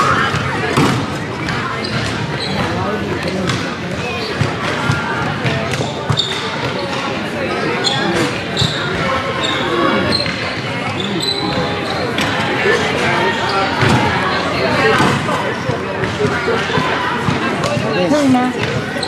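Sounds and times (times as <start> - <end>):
spectators chattering in echoing hall: 0.0 - 19.0.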